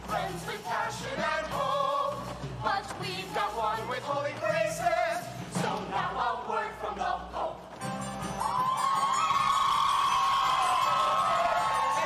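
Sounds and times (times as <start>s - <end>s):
audience cheering and shouting: 8.4s - 12.0s.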